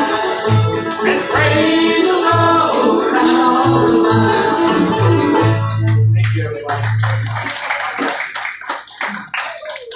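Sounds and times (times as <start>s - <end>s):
audience clapping: 0.8s - 4.8s, 5.8s - 9.9s.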